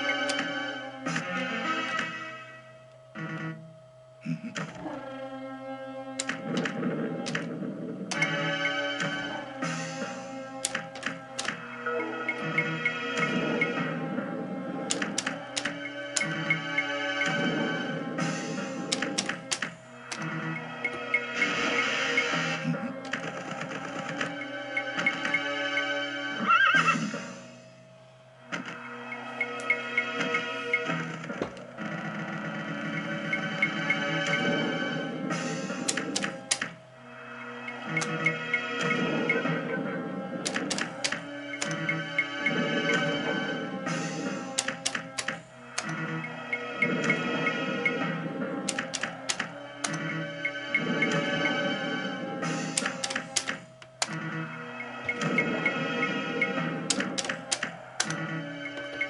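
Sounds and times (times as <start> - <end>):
slot machine background music: 0.0 - 59.0.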